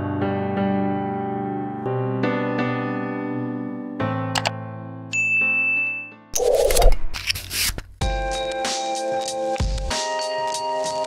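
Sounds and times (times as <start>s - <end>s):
soft piano music: 0.0s - 6.3s
bell-like ding: 5.1s - 6.1s.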